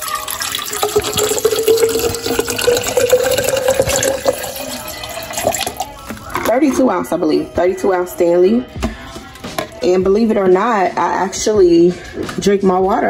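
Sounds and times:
water pouring into a metal cup: 0:00.0 - 0:06.8.

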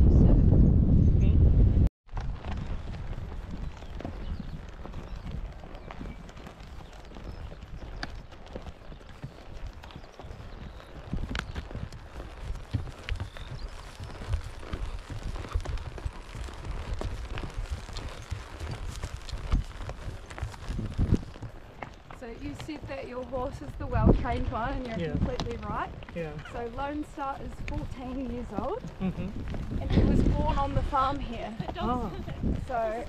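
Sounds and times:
horse hooves on dirt trail: 0:02.1 - 0:33.0.

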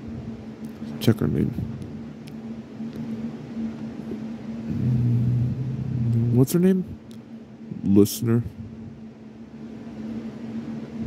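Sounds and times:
deeper hum: 0:00.0 - 0:11.0
steady low hum: 0:00.0 - 0:11.0.

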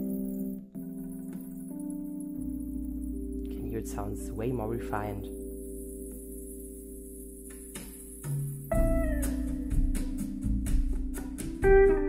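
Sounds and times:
jazz held notes on speaker: 0:00.0 - 0:12.0.

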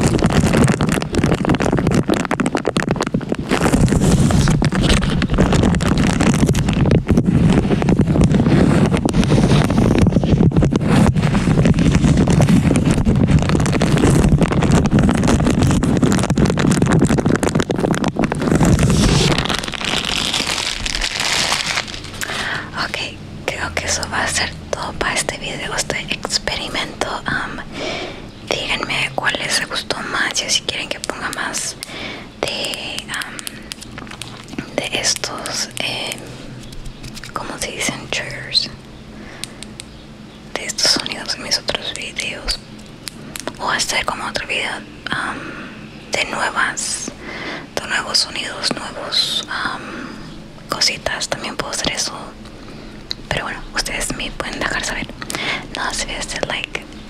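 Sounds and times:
plastic bag crinkling on microphone: 0:00.0 - 0:27.8, 0:28.5 - 0:39.9, 0:40.6 - 0:45.2, 0:53.1 - 0:57.0
person whispering: 0:22.2 - 0:27.8, 0:28.5 - 0:33.7, 0:34.6 - 0:36.2, 0:37.3 - 0:38.8, 0:40.6 - 0:42.6, 0:43.5 - 0:50.0, 0:50.7 - 0:52.4, 0:53.3 - 0:57.0.

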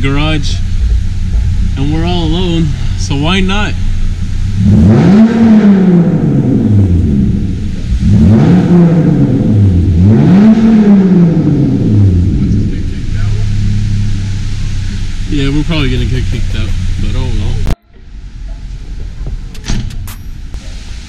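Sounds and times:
car engine revving: 0:00.0 - 0:20.8.

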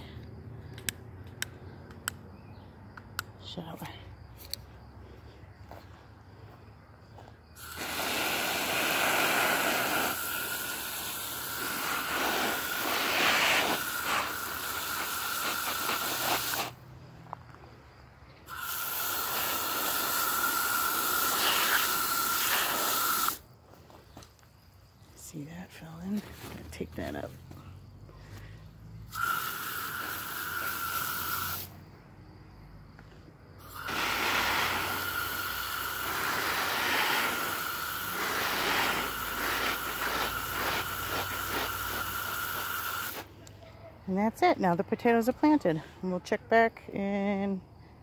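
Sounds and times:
hose nozzle spraying water: 0:07.6 - 0:16.8, 0:18.5 - 0:23.4, 0:29.1 - 0:31.8, 0:33.6 - 0:43.3.

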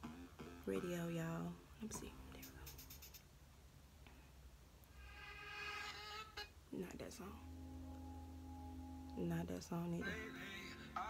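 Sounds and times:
low hum: 0:06.8 - 0:11.0.

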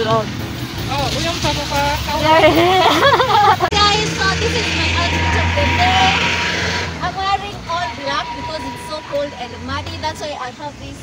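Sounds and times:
road traffic rumble: 0:00.0 - 0:11.0
woman's voice: 0:02.1 - 0:06.4.

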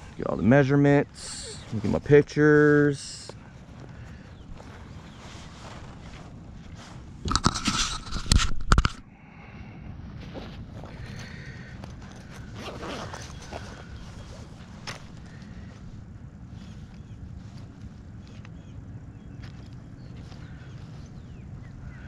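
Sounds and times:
rustling and handling noise: 0:01.1 - 0:09.0, 0:10.2 - 0:18.6
pocket zipper pulled open: 0:12.0 - 0:13.8.

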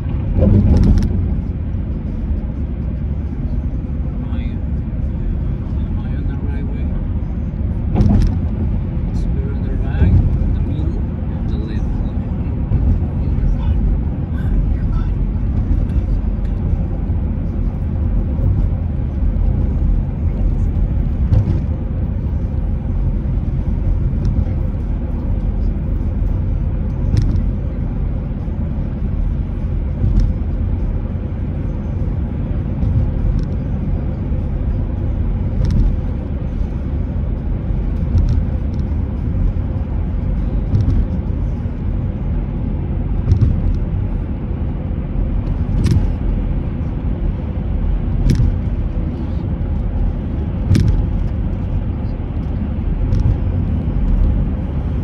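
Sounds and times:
car road and tyre noise: 0:00.0 - 0:55.0.

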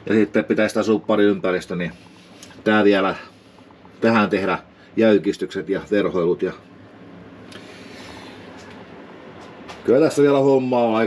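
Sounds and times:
low steady background hiss: 0:00.0 - 0:11.0.

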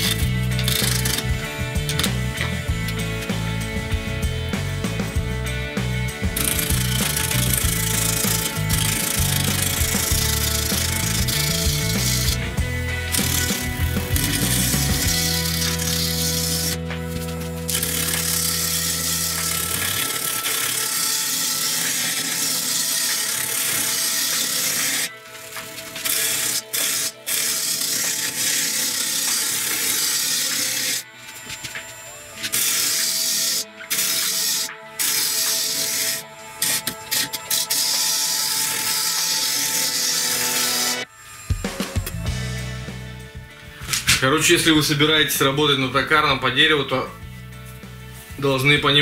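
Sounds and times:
wood lathe gouge hissing: 0:00.0 - 0:03.7, 0:06.3 - 0:43.0
background music with bass line: 0:00.0 - 0:49.0.

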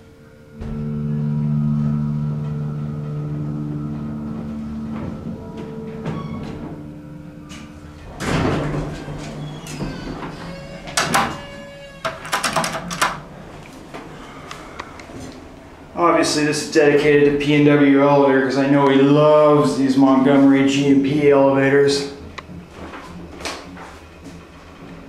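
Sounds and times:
elevator humming: 0:00.0 - 0:25.0
elevator door sliding open: 0:00.1 - 0:25.0
door gear clicking and rattling: 0:07.5 - 0:13.3.

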